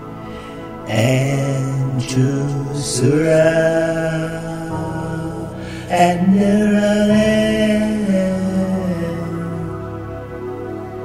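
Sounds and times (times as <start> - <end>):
person chanting: 0.0 - 10.8
music: 0.0 - 11.0.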